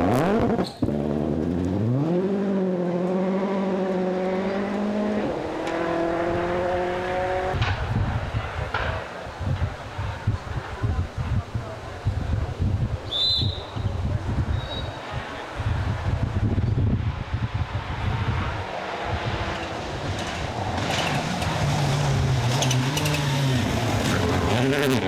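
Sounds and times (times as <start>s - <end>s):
rally car engine approaching: 0.0s - 9.1s, 15.6s - 25.0s
wind buffeting microphone: 4.5s - 22.9s.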